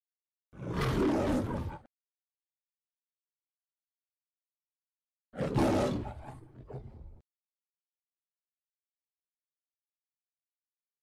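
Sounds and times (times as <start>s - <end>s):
lion roar: 0.6s - 1.9s, 5.3s - 7.2s.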